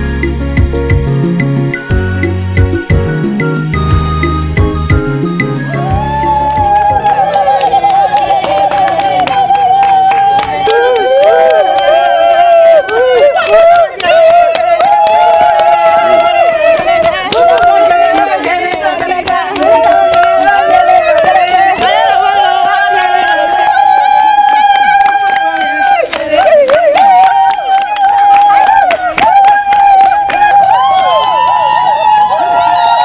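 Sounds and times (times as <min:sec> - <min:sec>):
hand claps: 0:06.4 - 0:31.5
women singing together: 0:14.0 - 0:23.7.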